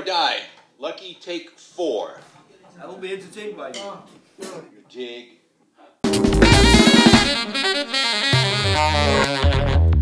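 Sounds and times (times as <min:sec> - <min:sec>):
drum kit: 0:06.0 - 0:10.0
saxophone melody: 0:06.0 - 0:10.0
bass line: 0:06.1 - 0:10.0
electric keyboard: 0:06.1 - 0:10.0.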